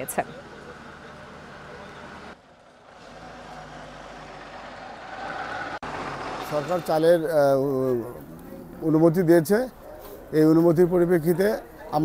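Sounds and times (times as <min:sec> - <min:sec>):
road noise: 0:00.0 - 0:12.0
truck engines running: 0:00.0 - 0:12.0.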